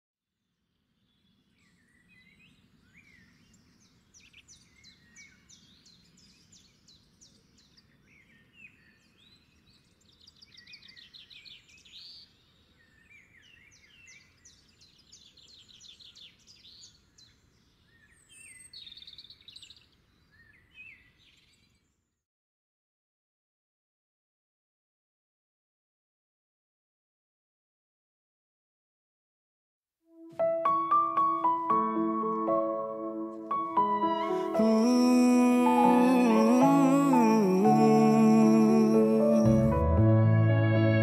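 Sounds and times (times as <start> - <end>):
faint birdsong chirps and trills: 0.4 - 22.2.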